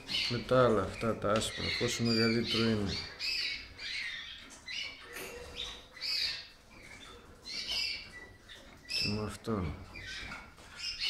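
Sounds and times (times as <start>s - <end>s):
canaries chirping: 0.0s - 11.0s.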